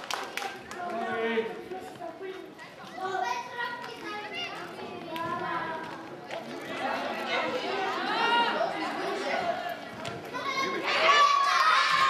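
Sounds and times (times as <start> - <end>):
children shouting: 6.6 - 12.0.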